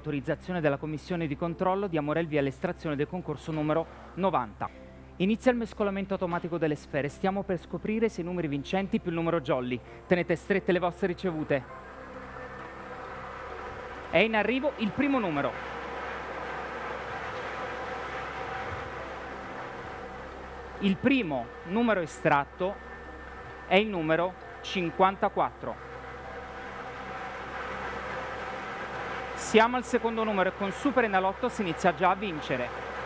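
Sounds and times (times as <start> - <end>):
lottery machine buzzing hum: 0.0 - 33.0.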